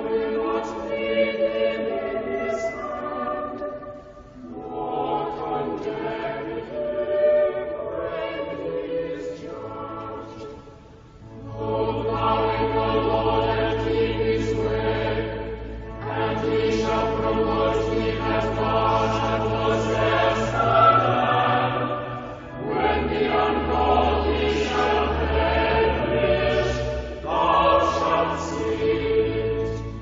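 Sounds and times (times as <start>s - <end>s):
choir singing church music: 0.0s - 30.0s.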